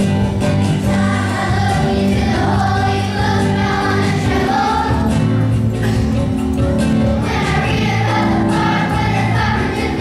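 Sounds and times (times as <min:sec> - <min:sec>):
children's choir singing: 0:00.0 - 0:06.1, 0:06.9 - 0:10.0
musical accompaniment with bass: 0:00.0 - 0:10.0.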